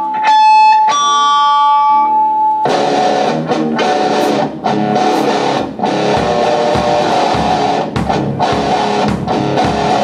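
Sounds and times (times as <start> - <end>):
electric guitar and keyboard jam: 0.0 - 10.0.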